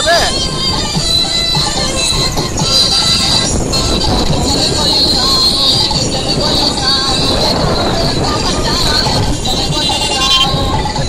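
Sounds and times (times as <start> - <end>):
engine and road noise: 0.0 - 11.0.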